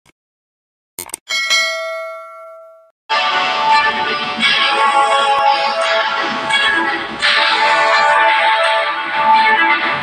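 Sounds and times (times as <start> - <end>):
bright bell ding: 1.3 - 2.9.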